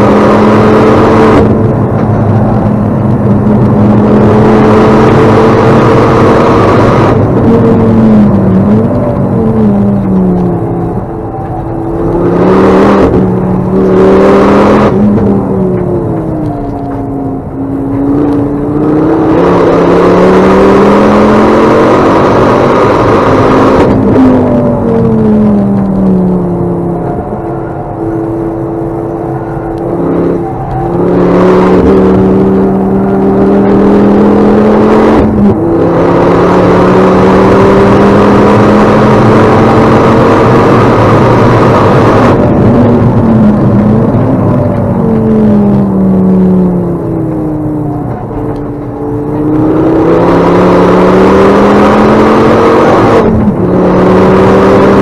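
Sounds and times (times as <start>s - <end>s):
car engine revving: 0.0s - 55.0s.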